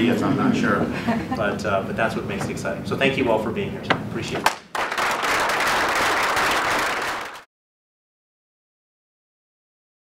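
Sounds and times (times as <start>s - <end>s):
audience applauding: 4.5s - 7.5s.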